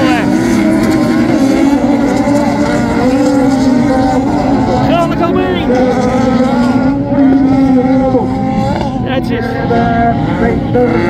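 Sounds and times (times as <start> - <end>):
racing car engines: 0.0 - 11.0.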